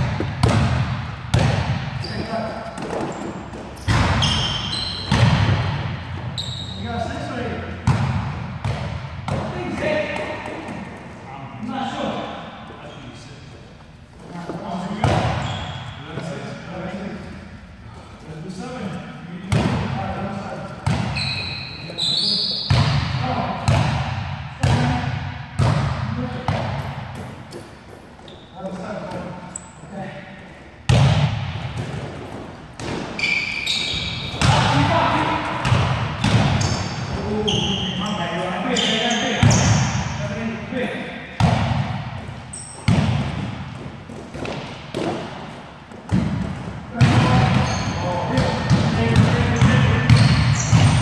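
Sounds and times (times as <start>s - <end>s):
basketball bouncing on gym floor: 0.0s - 6.6s, 7.8s - 10.9s, 15.0s - 16.3s, 20.7s - 21.4s, 22.6s - 29.3s, 30.9s - 37.7s, 38.8s - 40.1s, 41.4s - 51.0s
sneaker squeaks: 2.0s - 9.4s, 12.6s - 16.5s, 18.8s - 23.8s, 26.7s - 31.0s, 31.7s - 40.2s, 42.2s - 51.0s.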